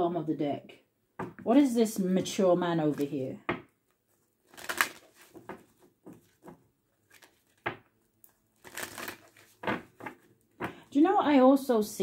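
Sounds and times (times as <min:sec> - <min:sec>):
cards being shuffled: 0:02.9 - 0:03.2, 0:03.9 - 0:10.8.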